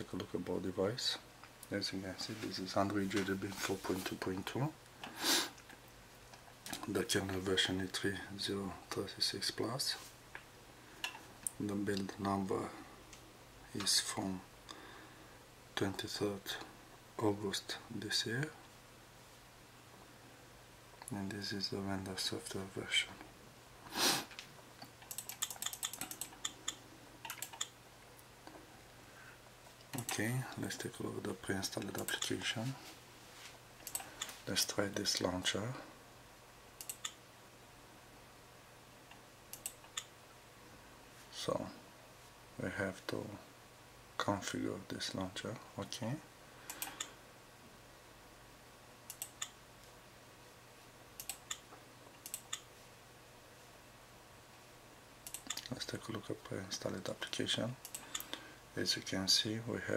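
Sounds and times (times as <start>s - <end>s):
faint low hum: 0.0s - 59.9s
computer mouse clicks: 24.3s - 27.8s, 29.8s - 30.3s, 31.8s - 32.4s, 33.8s - 34.4s, 36.8s - 37.2s, 39.1s - 40.1s, 46.7s - 47.2s, 49.1s - 49.6s, 51.2s - 52.7s, 55.2s - 55.7s, 57.8s - 58.4s.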